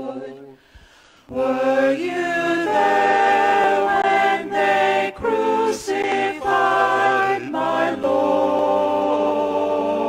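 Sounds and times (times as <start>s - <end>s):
vocal ensemble singing in harmony: 0.0s - 10.0s.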